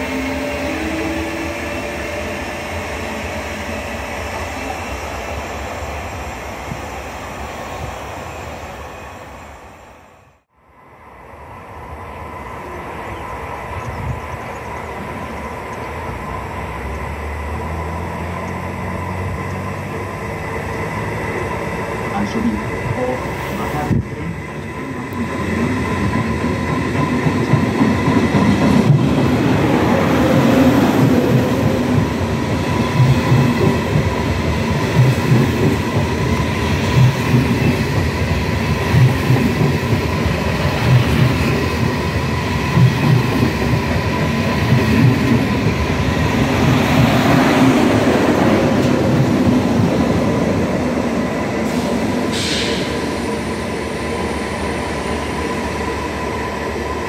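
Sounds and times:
high-speed train passing: 0:00.0 - 0:57.0.

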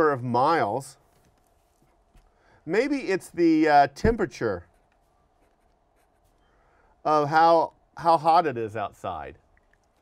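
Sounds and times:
marker pen scratching on paper: 0:04.4 - 0:06.5.

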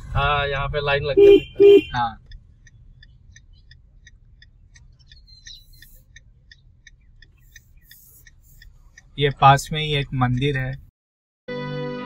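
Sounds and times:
low rumble of moving vehicle: 0:00.0 - 0:10.9.

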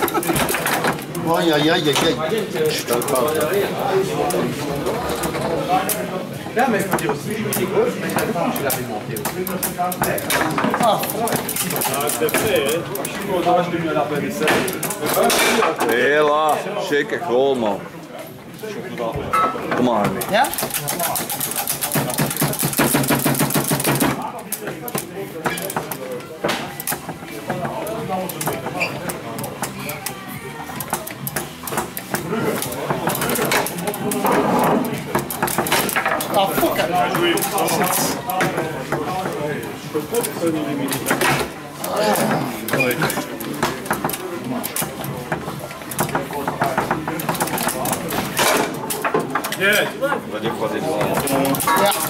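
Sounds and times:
foosball clacking: 0:00.0 - 0:16.7, 0:19.0 - 0:52.0
rods knocking: 0:19.8 - 0:24.2
background music: 0:26.1 - 0:49.6
people talking: 0:32.1 - 0:48.9, 0:49.5 - 0:52.0.

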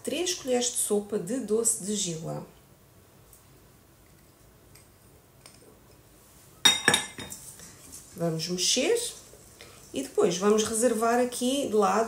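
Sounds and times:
utensil clinking on metal saucepan: 0:06.7 - 0:07.4.

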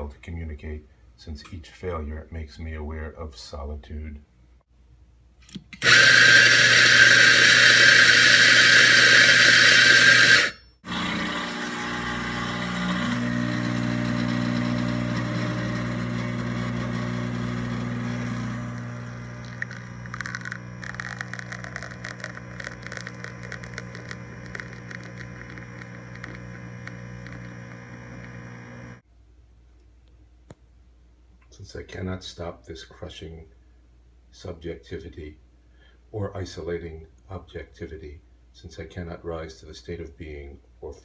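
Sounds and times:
electric coffee grinder running: 0:05.8 - 0:29.0
espresso machine pump humming: 0:05.8 - 0:29.0
light crackling: 0:18.4 - 0:29.0.

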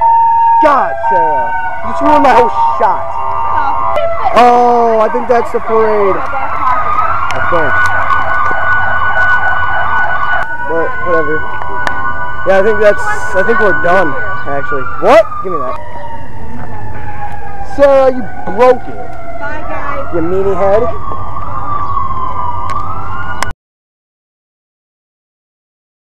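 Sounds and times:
siren in fast yelp: 0:00.0 - 0:23.5.

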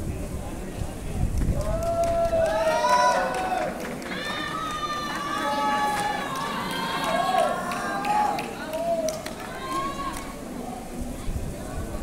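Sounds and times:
people shouting and calling out: 0:01.6 - 0:10.6.

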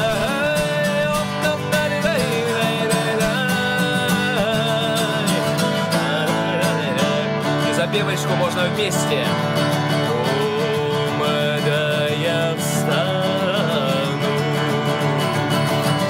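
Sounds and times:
acoustic guitar strumming: 0:00.0 - 0:16.0
man singing: 0:00.0 - 0:16.0.

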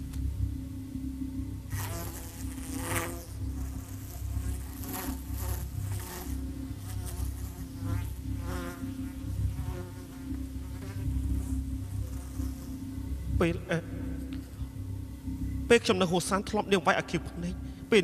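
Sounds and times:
insect-like buzzing hum: 0:00.0 - 0:18.0.

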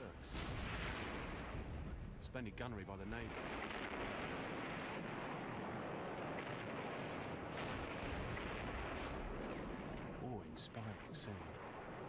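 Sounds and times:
artillery shellfire and bursts: 0:00.0 - 0:02.3, 0:03.2 - 0:10.2
sharp cracks: 0:06.2 - 0:10.2.

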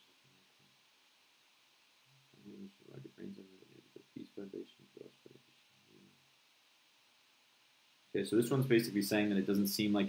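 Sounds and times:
man quietly mumbling: 0:02.4 - 0:06.2.

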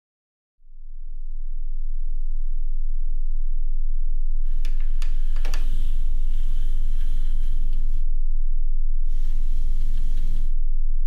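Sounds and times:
deep steady drone: 0:00.7 - 0:11.0
static-like crackling: 0:04.5 - 0:08.0, 0:09.1 - 0:10.5.

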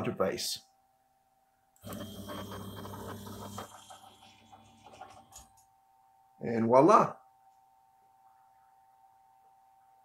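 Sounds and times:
stepper motor humming: 0:01.8 - 0:05.4
motor clicks: 0:01.8 - 0:05.6.

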